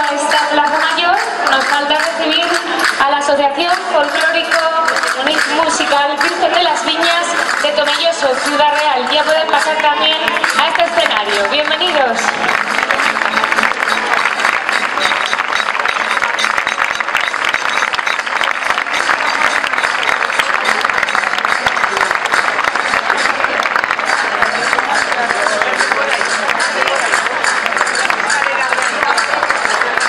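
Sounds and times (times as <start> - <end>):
audience applauding: 0.0 - 30.0.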